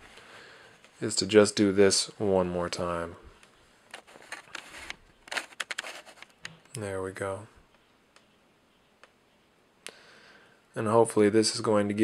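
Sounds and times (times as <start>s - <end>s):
soft handling rustles: 2.7s - 8.2s.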